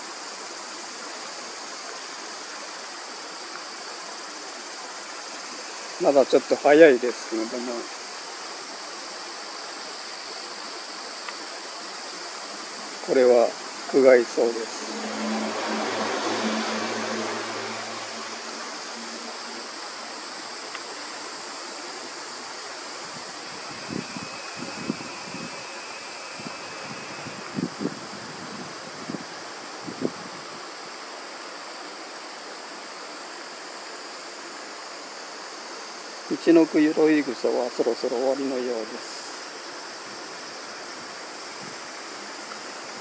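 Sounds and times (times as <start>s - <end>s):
mountain stream rushing: 0.0s - 43.0s.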